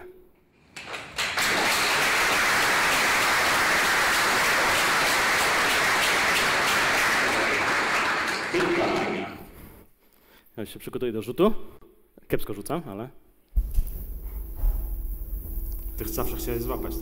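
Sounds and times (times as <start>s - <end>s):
audience applauding: 0.7s - 9.5s.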